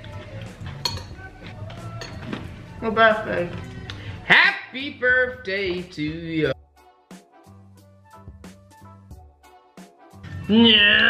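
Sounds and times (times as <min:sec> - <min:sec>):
spoons clinking against bowls: 0:00.0 - 0:02.4
background music: 0:00.0 - 0:11.0.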